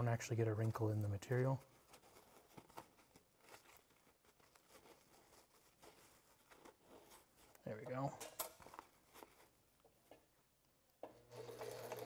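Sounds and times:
fabric rustling: 0.5s - 10.2s.

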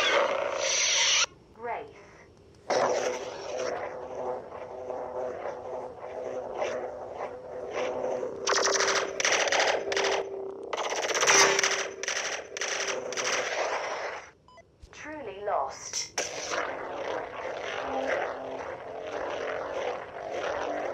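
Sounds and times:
loud crackling bursts: 0.0s - 1.3s, 2.7s - 14.4s, 15.9s - 20.9s
lightsaber hum with swing sounds: 0.0s - 1.9s, 2.7s - 14.2s, 15.8s - 20.9s.

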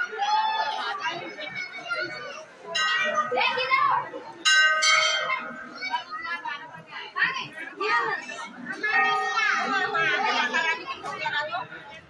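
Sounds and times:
crowd chatter: 0.0s - 12.0s
temple bell ringing: 2.8s - 6.6s.

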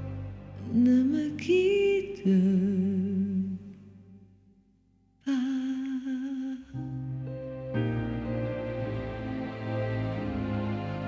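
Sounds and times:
instrumental accompaniment: 6.8s - 11.0s.

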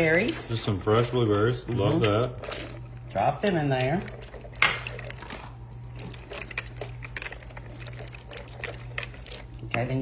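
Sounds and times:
whisk stirring wet mixture: 0.0s - 10.0s.

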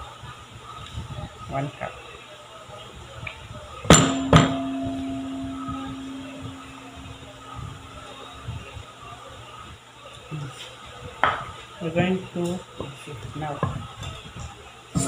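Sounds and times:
metal bowl ringing: 3.9s - 8.5s.

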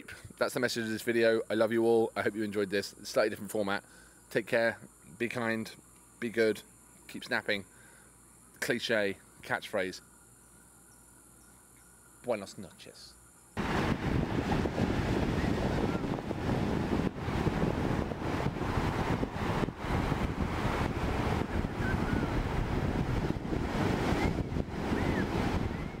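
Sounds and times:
ocean surf breaking: 13.6s - 26.0s
wind buffeting microphone: 13.6s - 26.0s.

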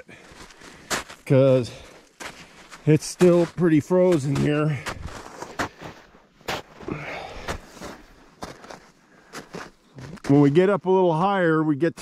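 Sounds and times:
footsteps crunching on snow: 0.0s - 10.8s.

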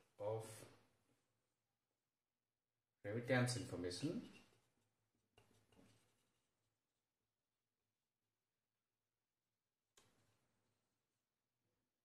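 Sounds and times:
marker writing on whiteboard: 4.3s - 6.6s.

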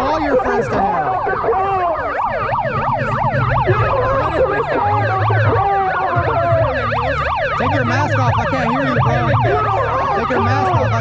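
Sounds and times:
megaphone siren yelp: 0.0s - 11.0s.

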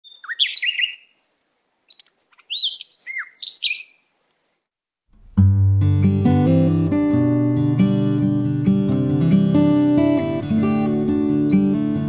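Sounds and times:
songbirds chirping: 0.0s - 4.6s.

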